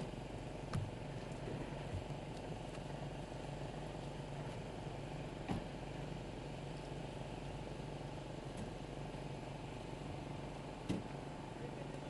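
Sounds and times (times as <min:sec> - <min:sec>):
low hum of slow vehicles: 0:00.0 - 0:12.0.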